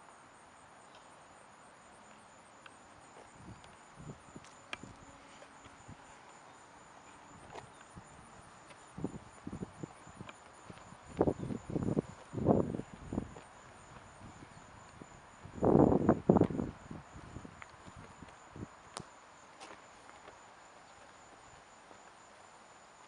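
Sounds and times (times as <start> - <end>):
crickets trilling: 0.0 - 23.0
footsteps: 2.1 - 7.9, 8.6 - 15.0, 16.4 - 22.2.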